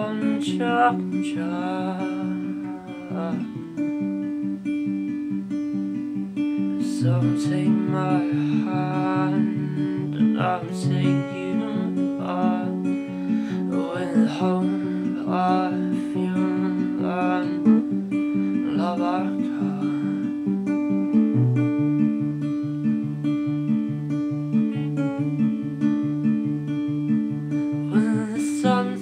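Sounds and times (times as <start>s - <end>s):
person singing: 0.0s - 3.8s, 6.6s - 21.5s, 27.7s - 29.0s
acoustic guitar picking: 0.0s - 29.0s.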